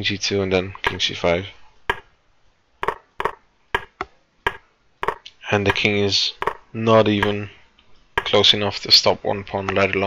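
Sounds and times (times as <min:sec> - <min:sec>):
sharp computer clicks: 0:00.8 - 0:01.1, 0:01.9 - 0:02.1, 0:02.8 - 0:07.4, 0:08.2 - 0:08.5.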